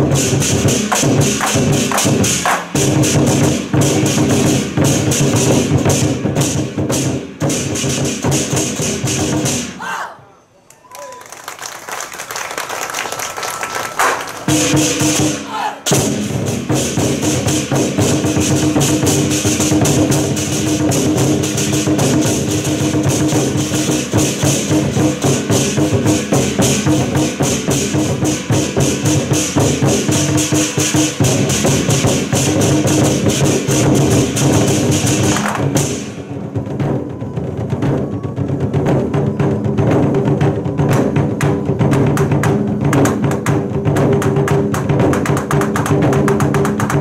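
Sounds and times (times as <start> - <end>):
barrel drums beaten with sticks: 0.0 - 9.8, 14.0 - 47.0.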